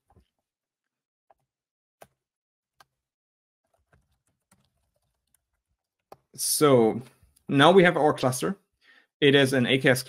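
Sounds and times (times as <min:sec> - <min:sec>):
faint keyboard typing: 0:03.7 - 0:06.4.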